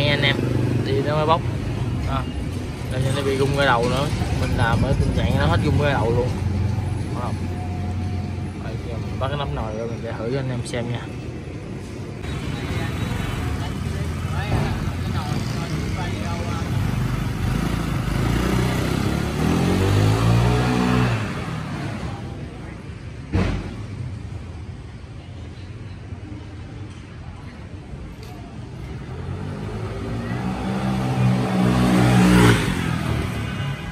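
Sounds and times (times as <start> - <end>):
scooter engine accelerating: 15.1 - 22.2
sharp knock: 23.3 - 23.9.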